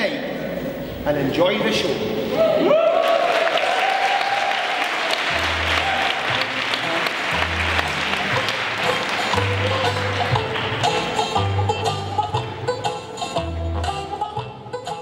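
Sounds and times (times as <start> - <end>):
audience applauding: 2.6 - 11.5
music with low bass notes: 6.4 - 15.0.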